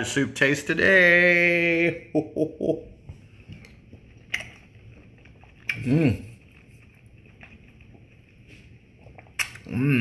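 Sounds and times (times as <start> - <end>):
soft chewing and mouth clicks: 3.0 - 10.0
short vocal sounds: 5.7 - 6.4.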